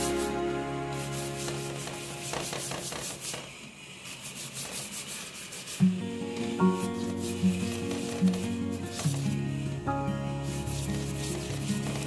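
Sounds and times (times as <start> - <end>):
faint background music: 0.0 - 2.9, 5.8 - 12.0
paintbrush scrubbing on paper: 0.0 - 9.4, 10.3 - 12.0.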